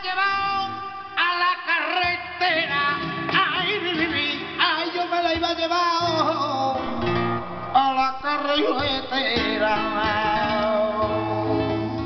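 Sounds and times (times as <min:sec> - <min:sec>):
man singing melismatic phrases: 0:00.0 - 0:11.5
flamenco guitar: 0:00.0 - 0:12.0.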